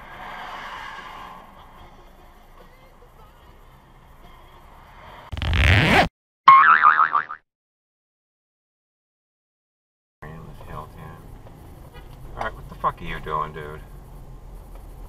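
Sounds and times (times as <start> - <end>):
faint road noise: 0.0 - 6.1, 10.2 - 15.0
cartoon boing sound effect: 6.5 - 7.4.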